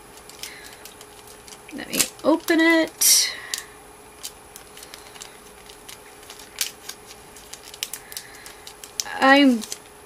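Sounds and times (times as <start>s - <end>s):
plastic sleeve crackling: 0.0s - 3.6s, 4.2s - 10.0s.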